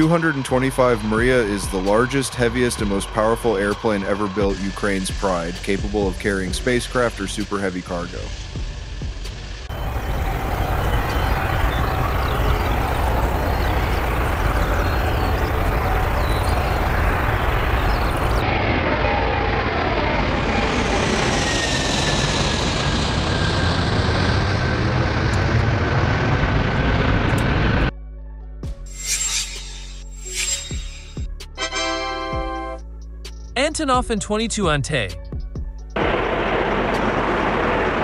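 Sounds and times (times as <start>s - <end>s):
jet engine roar: 0.0s - 8.9s, 9.6s - 27.9s, 36.0s - 38.0s
high jet engine whine: 0.0s - 27.9s, 28.9s - 31.9s, 36.0s - 38.0s.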